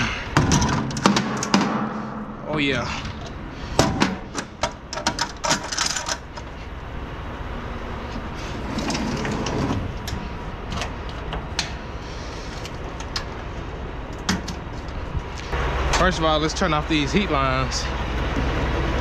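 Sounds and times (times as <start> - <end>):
metal clicks and clanks: 0.0 - 2.2, 2.9 - 6.6, 8.7 - 11.8
steady low rumble: 0.0 - 19.0.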